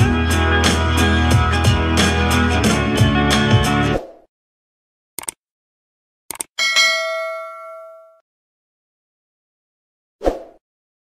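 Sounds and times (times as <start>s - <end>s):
bright bell ding: 6.6s - 8.2s.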